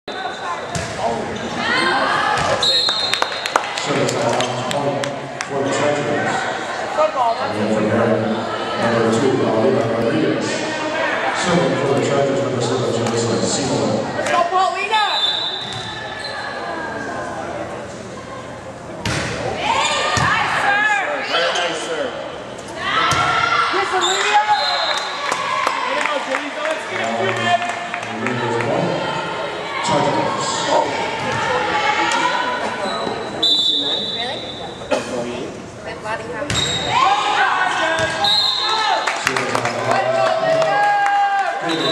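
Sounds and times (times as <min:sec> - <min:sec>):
people talking in a hall: 0:00.0 - 0:41.9
people calling in a gym: 0:14.2 - 0:17.5, 0:22.8 - 0:26.7, 0:28.5 - 0:34.9, 0:36.6 - 0:39.2, 0:39.9 - 0:41.9.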